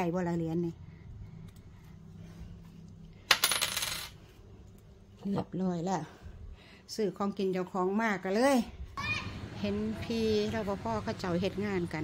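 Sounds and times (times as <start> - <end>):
coin dropping and ringing: 3.3 - 4.2.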